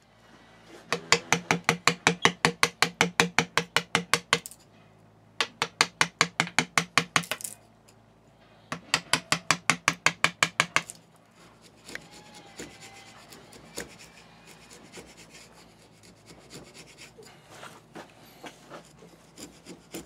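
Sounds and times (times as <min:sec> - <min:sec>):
hammer striking chisel on steel: 0:00.9 - 0:04.6, 0:08.7 - 0:11.0.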